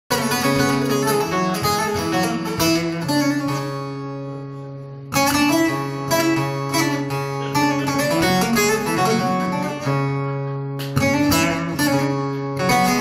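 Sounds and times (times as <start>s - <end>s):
plucked long-necked lute with drone: 0.1s - 13.0s.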